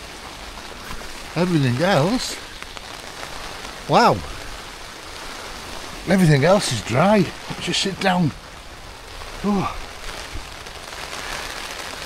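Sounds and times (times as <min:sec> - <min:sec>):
heavy rain on tent: 0:00.0 - 0:12.0
man saying wow: 0:09.4 - 0:09.8.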